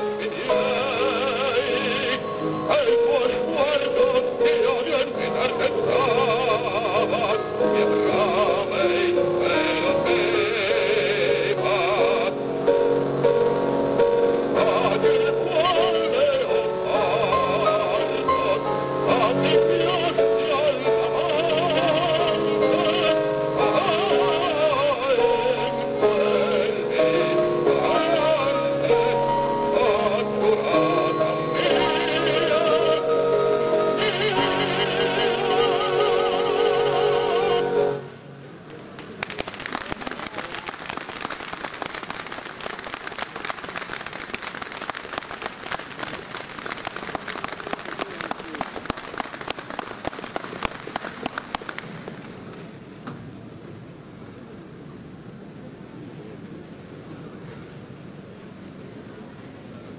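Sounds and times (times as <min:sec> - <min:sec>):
baritone singing: 0:00.0 - 0:38.2
grand piano: 0:00.0 - 0:55.0
audience applause: 0:39.0 - 0:52.3.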